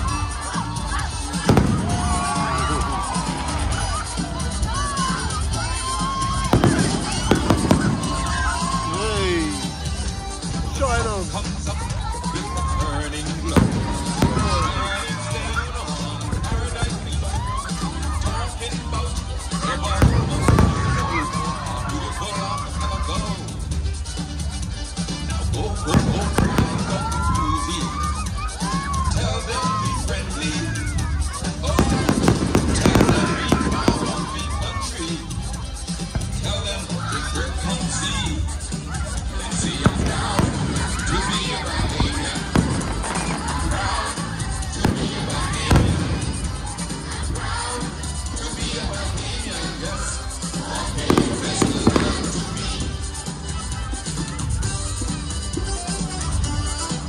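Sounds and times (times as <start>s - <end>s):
background music: 0.0s - 57.0s
people's voices: 0.0s - 57.0s
fireworks exploding: 0.2s - 10.5s, 13.2s - 18.4s, 19.4s - 22.2s, 25.8s - 28.7s, 31.6s - 35.2s, 39.4s - 53.6s.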